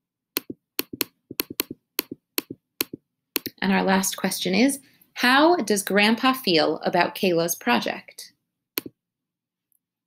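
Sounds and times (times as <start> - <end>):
computer mouse clicks: 0.4 - 3.6.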